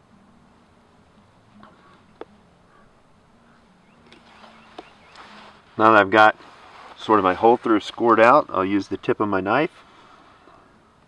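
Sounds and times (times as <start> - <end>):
faint birdsong: 0.1 - 11.0.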